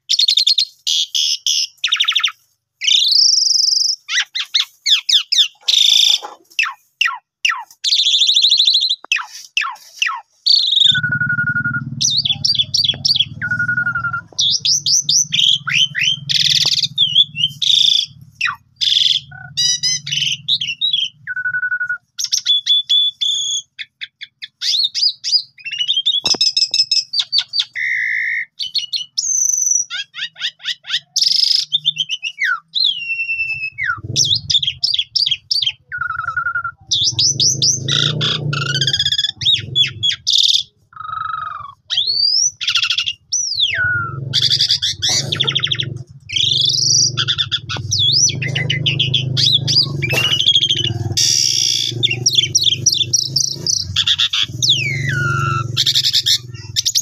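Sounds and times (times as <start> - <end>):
starling singing: 0.0 - 57.0.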